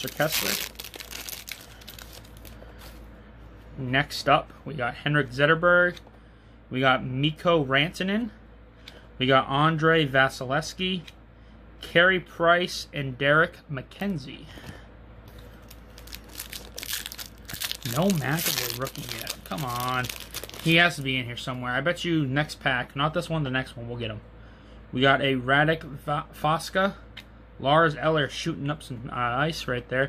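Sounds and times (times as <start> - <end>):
foil wrapper crinkling: 0.0 - 2.6, 15.6 - 21.0.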